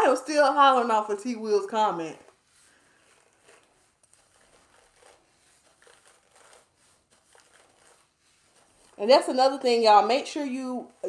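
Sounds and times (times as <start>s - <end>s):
brush rustling through hair: 0.1s - 11.0s.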